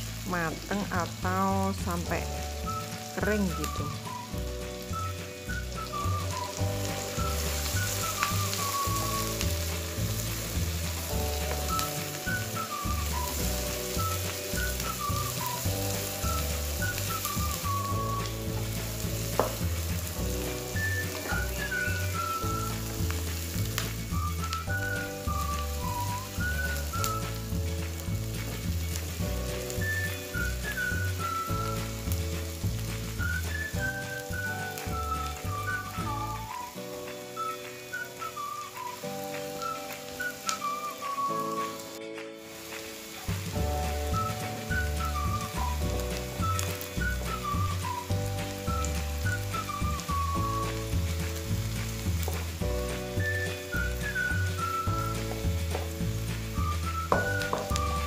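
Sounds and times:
background music: 0.0 - 58.0
food sizzling in hot oil: 0.0 - 58.0.

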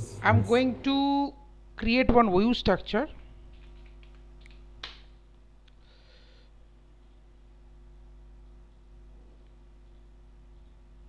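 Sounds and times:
keyboard keystrokes: 3.5 - 5.0.

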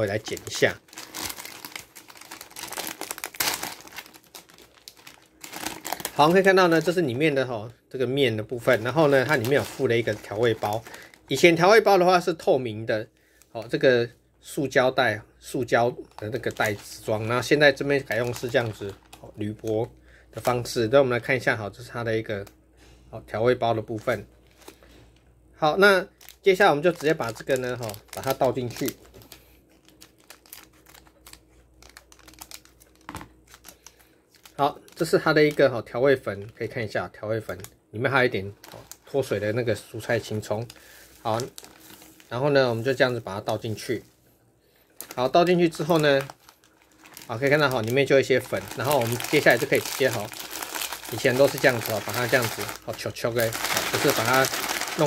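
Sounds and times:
foil bag crinkling: 0.0 - 7.3, 8.5 - 11.9, 16.0 - 20.8, 24.0 - 25.0, 26.1 - 36.9, 37.5 - 44.1, 45.0 - 55.0.

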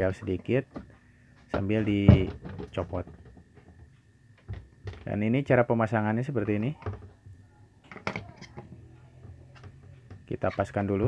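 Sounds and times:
faint low hum: 0.0 - 11.0
plastic clicks and knocks: 7.9 - 10.3.

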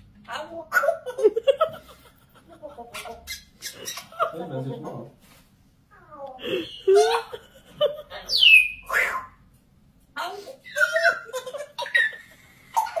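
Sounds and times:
parrot speech-like calls: 8.4 - 9.4.

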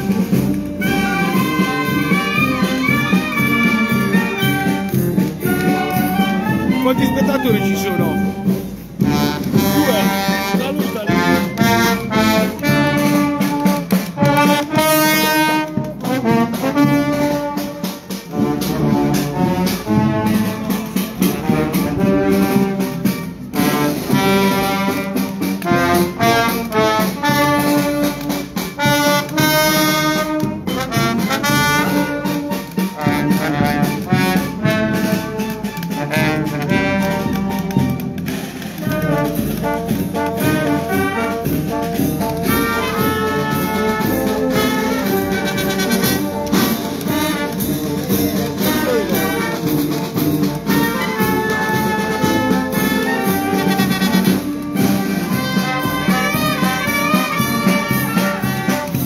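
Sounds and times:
wind band playing a march: 0.0 - 59.0.

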